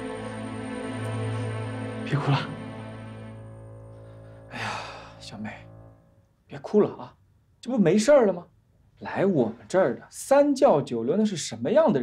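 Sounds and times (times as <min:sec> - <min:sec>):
soft background music: 0:00.0 - 0:08.4.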